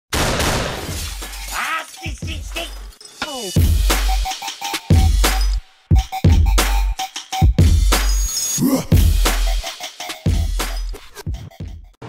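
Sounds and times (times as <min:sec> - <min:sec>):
short vocal sample: 0:08.6 - 0:09.0.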